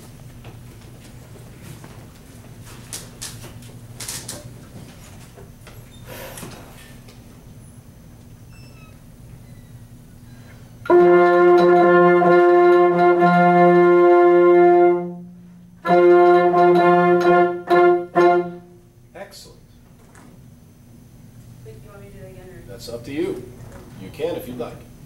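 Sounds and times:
ensemble playing held chord: 0:10.9 - 0:18.8.

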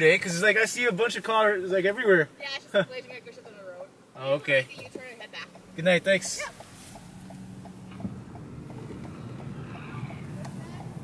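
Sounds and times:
engine and road rumble: 0:00.0 - 0:11.0
turn signal ticking: 0:04.7 - 0:11.0.

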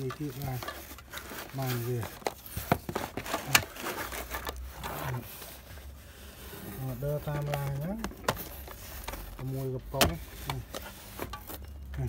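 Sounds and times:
cans scraping in cardboard box: 0:00.0 - 0:11.6.

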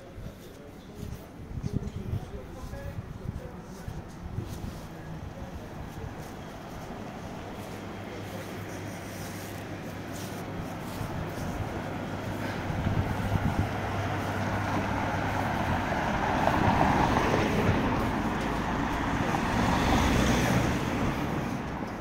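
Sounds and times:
cars driving past: 0:05.9 - 0:22.0.

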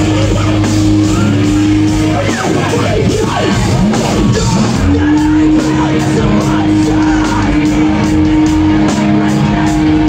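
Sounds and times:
pop-punk band playing live: 0:00.0 - 0:10.0.

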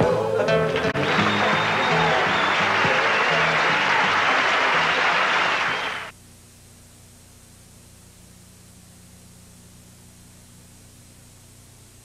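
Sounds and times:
audience applauding: 0:00.6 - 0:06.1.

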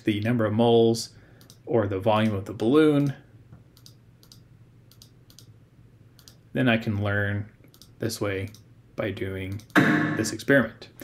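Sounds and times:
computer mouse clicks: 0:01.4 - 0:01.6, 0:03.8 - 0:05.5, 0:06.2 - 0:06.4, 0:07.7 - 0:08.7, 0:09.5 - 0:09.8.

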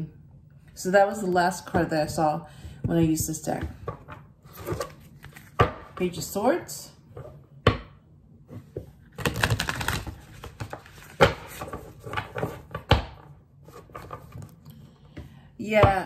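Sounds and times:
cards being shuffled: 0:04.5 - 0:05.7, 0:09.1 - 0:12.6.

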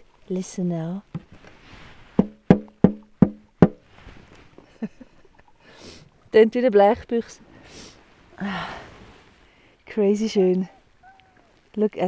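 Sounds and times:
river ice knocking with hollow ring: 0:02.2 - 0:03.8.

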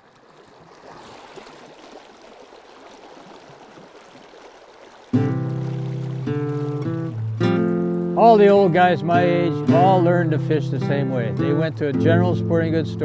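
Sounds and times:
river water rushing: 0:00.0 - 0:09.6
acoustic guitar music: 0:05.1 - 0:13.0.

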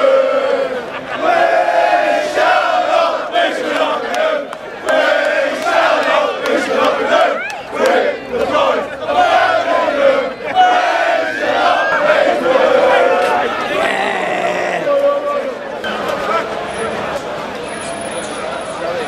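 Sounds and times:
crowd chanting in unison: 0:00.0 - 0:15.6.

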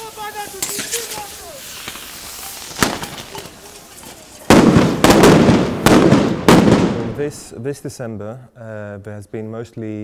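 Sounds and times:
firework bangs: 0:00.0 - 0:07.2
firework crackling: 0:00.0 - 0:07.2.

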